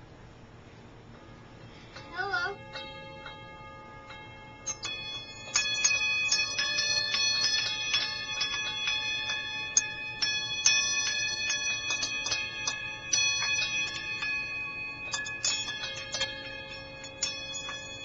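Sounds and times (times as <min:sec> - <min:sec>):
small metal bells ringing: 0:01.8 - 0:18.0.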